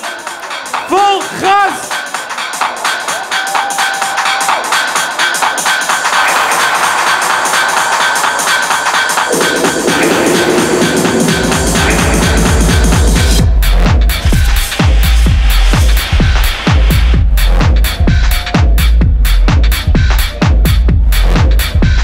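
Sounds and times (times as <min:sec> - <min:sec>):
loud electronic dance music: 0:00.0 - 0:22.0.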